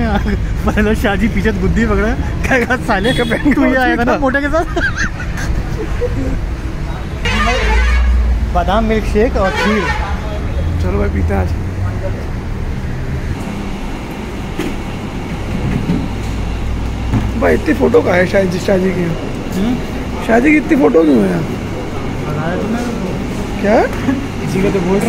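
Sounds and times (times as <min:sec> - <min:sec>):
rumble of passing vehicles: 0:00.0 - 0:25.0
vehicle horns honking: 0:02.6 - 0:04.2, 0:07.2 - 0:08.4, 0:09.4 - 0:11.0.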